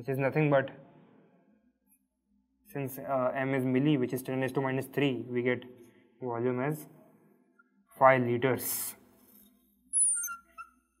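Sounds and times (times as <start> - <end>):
high-pitched falling squeak: 9.9 - 10.9
lower squeak: 9.9 - 11.0.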